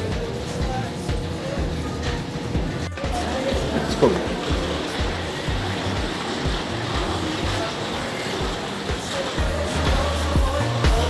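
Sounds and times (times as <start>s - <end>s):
background music with bass beat: 0.0s - 11.0s.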